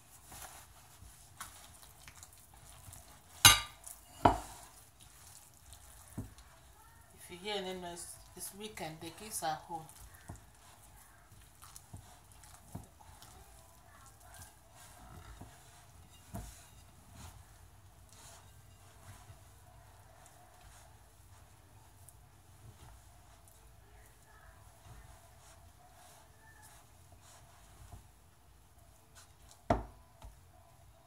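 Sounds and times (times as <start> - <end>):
hands mixing dough in glass bowl: 0.0 - 31.0.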